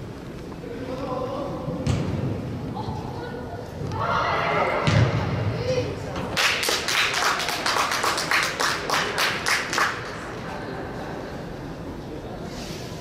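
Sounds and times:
people clapping: 6.3 - 10.3.

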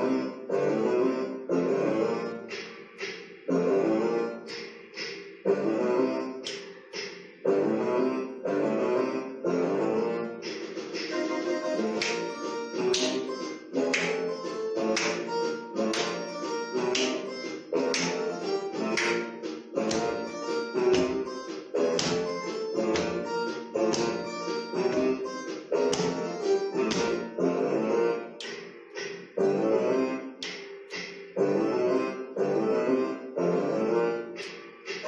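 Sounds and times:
instrumental music with beat: 1.8 - 8.3, 10.1 - 35.0
sharp hand claps: 11.9 - 13.3, 13.9 - 14.3, 14.9 - 15.3, 15.9 - 16.3, 16.9 - 18.2, 18.9 - 20.3, 21.9 - 22.3, 22.9 - 23.2, 23.9 - 24.3, 25.9 - 27.2, 30.4 - 31.3.

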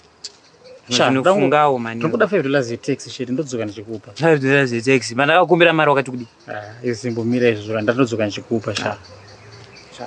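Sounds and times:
man speaking: 0.9 - 9.0.

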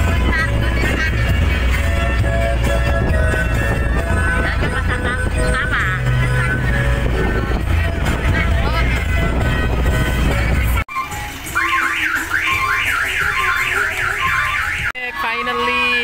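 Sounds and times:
music with heavy bass beat: 0.0 - 14.9
electronic siren whooping: 10.9 - 15.0.

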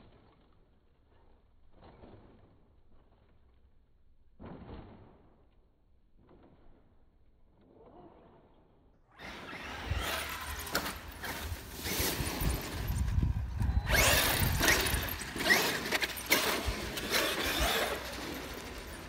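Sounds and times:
rc truck driving over dirt: 9.1 - 19.0.

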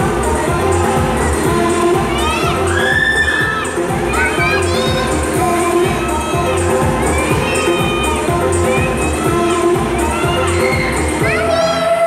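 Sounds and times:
dance music with bass beat: 0.0 - 12.0
children shouting and shrieking: 1.7 - 12.0.

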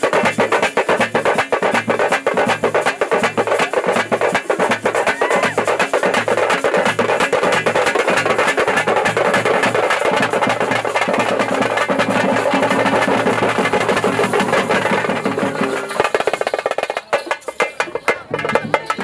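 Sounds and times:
drum band playing fast rhythm: 0.0 - 19.0.

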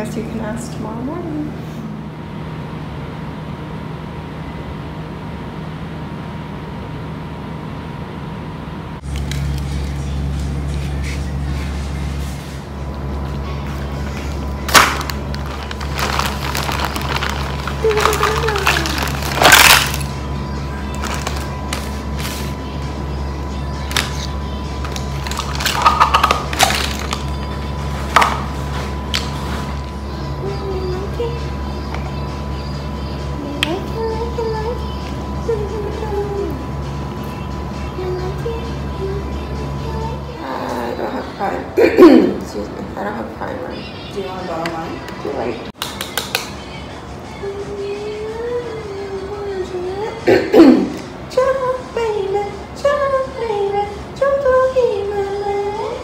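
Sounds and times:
background music with low drone: 8.6 - 56.0
plastic bag crinkling: 14.6 - 20.2, 20.8 - 22.5, 23.9 - 29.7.

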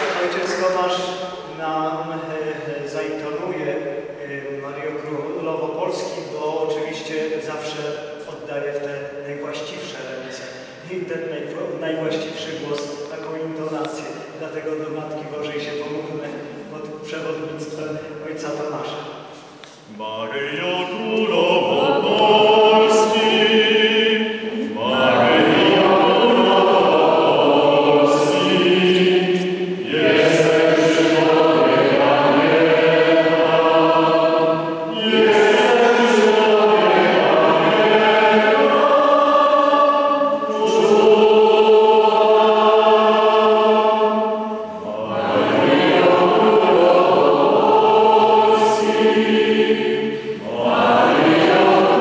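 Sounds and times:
voices singing a hymn: 0.0 - 52.0.

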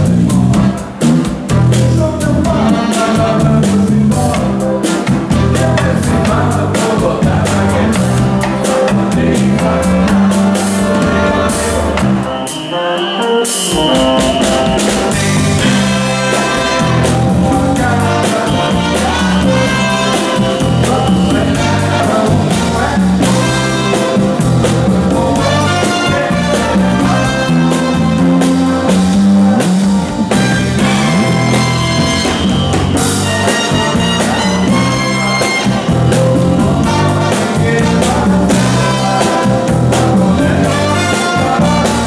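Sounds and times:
electric bass: 0.0 - 12.4, 13.7 - 42.0
drum kit with cymbals: 0.0 - 42.0
live band playing upbeat groove: 0.0 - 42.0
conga hits: 13.4 - 42.0.

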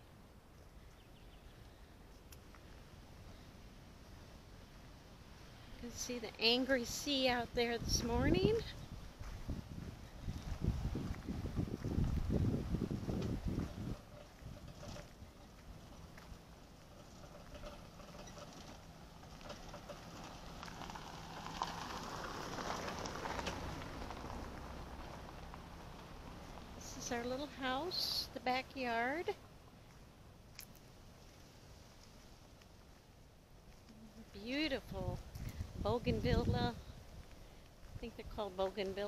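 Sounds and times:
wind buffeting microphone: 6.4 - 16.5, 34.5 - 39.0.

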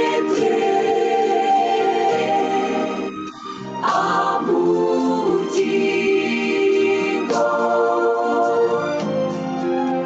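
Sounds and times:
choir singing a hymn: 0.0 - 9.0.

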